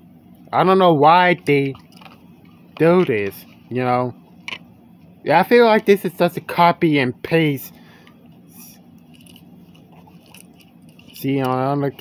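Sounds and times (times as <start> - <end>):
toy car handling rustling: 9.1 - 12.0.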